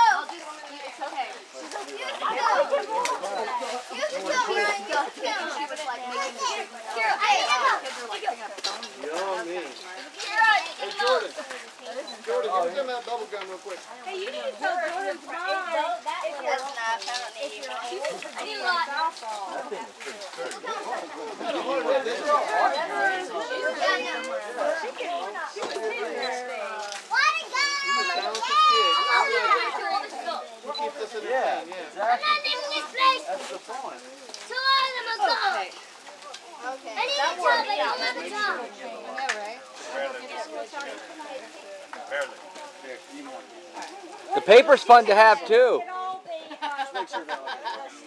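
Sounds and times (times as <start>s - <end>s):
children shouting and chattering: 0.0s - 48.0s.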